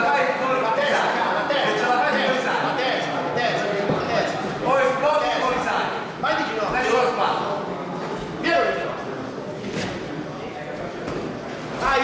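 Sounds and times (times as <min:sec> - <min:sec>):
crowd noise in a hall: 0:00.0 - 0:12.0.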